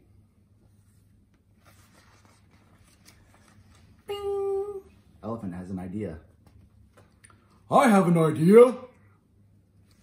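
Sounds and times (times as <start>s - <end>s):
paper pages being turned: 0.8s - 4.1s.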